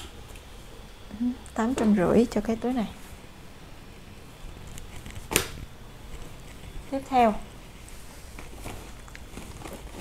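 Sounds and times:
bag handling clicks and rustles: 8.3s - 10.0s.

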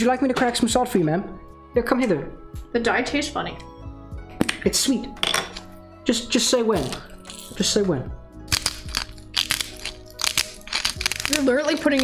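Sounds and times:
salt grinder cracking crystals: 6.8s - 7.6s, 8.5s - 12.0s.

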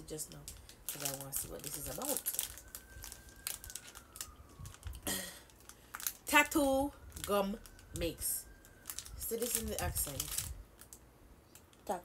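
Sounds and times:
candy packet crinkling: 0.0s - 12.0s.

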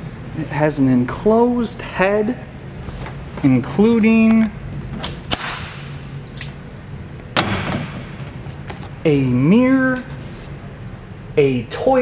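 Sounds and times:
latch click: 4.3s - 5.8s.

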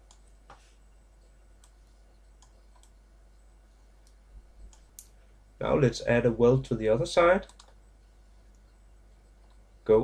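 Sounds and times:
low room noise: 0.0s - 10.0s
computer mouse clicks: 1.6s - 5.2s, 7.4s - 7.8s.

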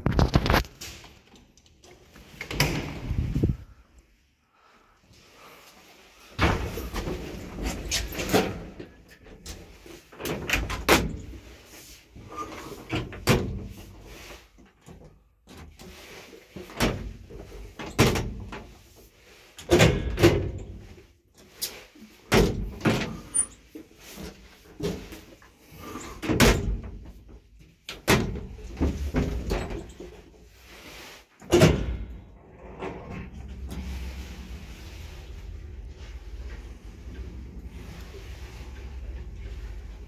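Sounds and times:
elevator door opening: 31.5s - 40.0s
short rumble: 32.1s - 40.0s.

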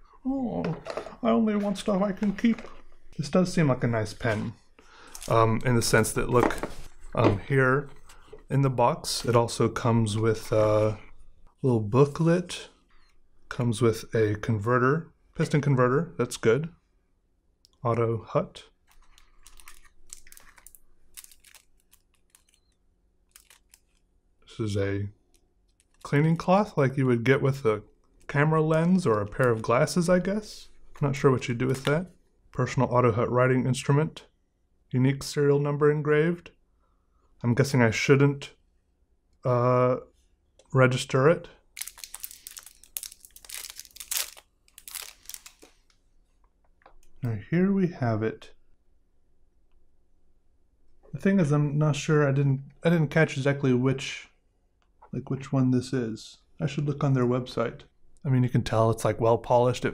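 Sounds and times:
plastic sleeve crinkling: 5.1s - 7.0s, 18.8s - 24.1s, 25.3s - 26.4s, 41.7s - 46.0s.

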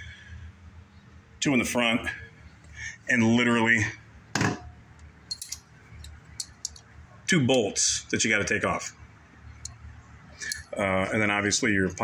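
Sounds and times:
small metal parts clinking: 5.3s - 6.8s, 10.4s - 10.8s.

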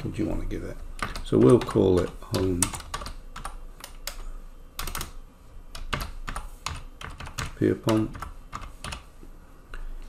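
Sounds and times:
typing on computer keyboard: 1.0s - 9.1s.

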